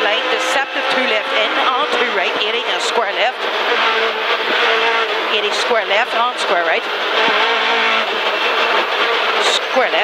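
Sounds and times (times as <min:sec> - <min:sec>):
rally car engine running hard: 0:00.0 - 0:10.0.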